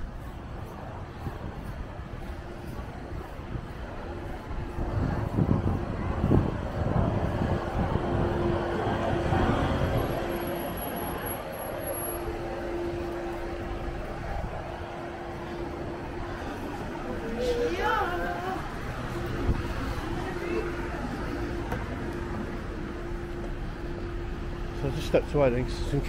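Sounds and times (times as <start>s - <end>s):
steady traffic hum: 0.0s - 26.0s
vehicle passing: 0.0s - 26.0s.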